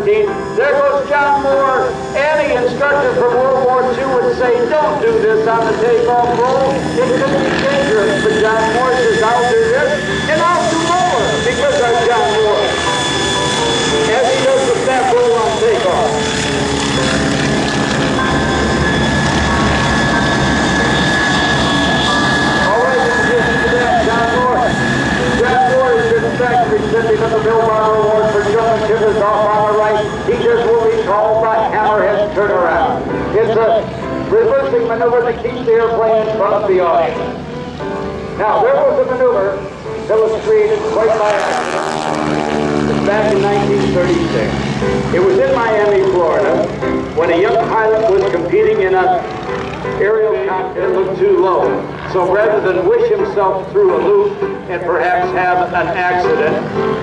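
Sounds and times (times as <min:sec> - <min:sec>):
person speaking: 0:00.0 - 0:17.4
biplane engine drone: 0:00.0 - 0:57.0.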